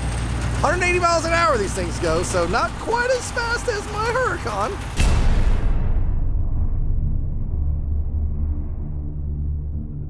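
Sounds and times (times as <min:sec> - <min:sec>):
low bass rumble: 0:04.8 - 0:10.0
cinematic boom: 0:05.0 - 0:10.0.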